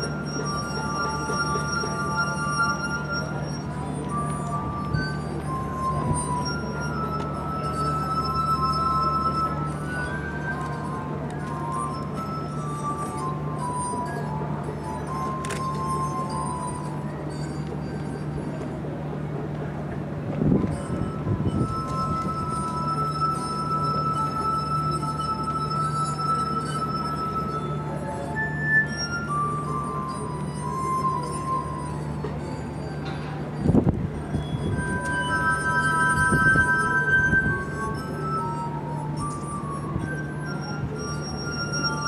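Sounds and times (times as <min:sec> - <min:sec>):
glass harp melody: 0:00.0 - 0:42.0.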